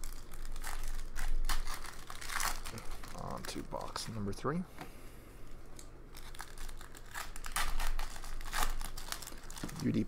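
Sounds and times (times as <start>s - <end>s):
foil wrappers crinkling and tearing: 0.0s - 4.3s, 5.7s - 10.0s.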